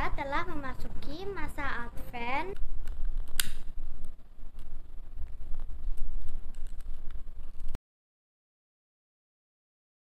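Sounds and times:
low rumble: 1.7 - 7.8
lighter clicking: 2.6 - 3.7.

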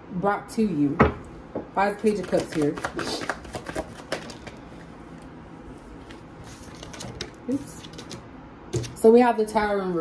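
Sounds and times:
cards being shuffled: 2.1 - 4.6.

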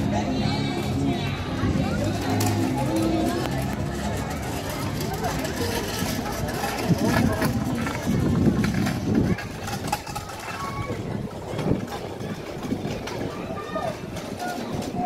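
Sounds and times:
faint voices: 0.0 - 15.0
outdoor background noise: 0.0 - 15.0.

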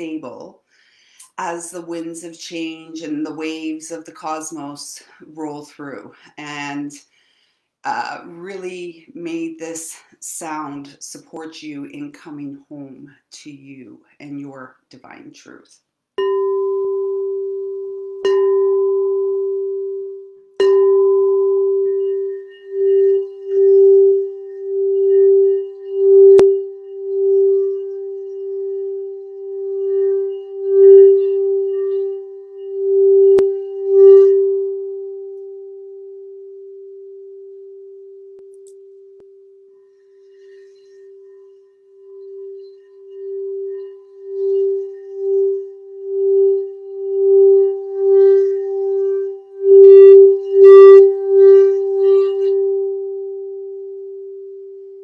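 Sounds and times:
singing bowl strikes: 16.2 - 28.7, 40.3 - 54.4
singing bowl ringing tone: 16.2 - 55.0.

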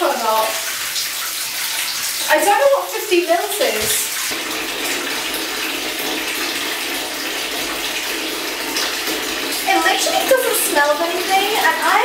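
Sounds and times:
bath tap running into tub: 0.0 - 12.0.

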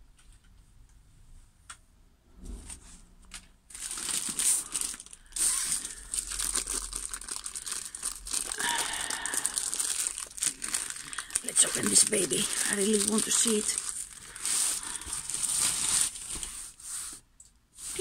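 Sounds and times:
plastic wrapping crinkling: 3.3 - 17.2.

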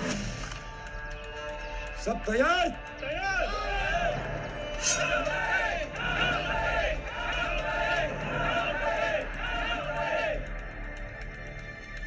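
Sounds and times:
film music: 0.0 - 12.0.

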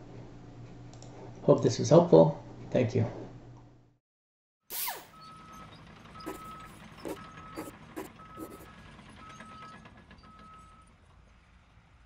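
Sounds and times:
reversing alarm beeping: 5.1 - 10.9.

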